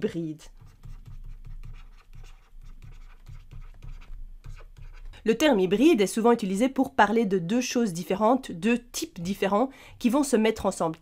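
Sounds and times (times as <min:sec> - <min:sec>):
stylus scratching on drawing tablet: 0:00.4 - 0:05.9.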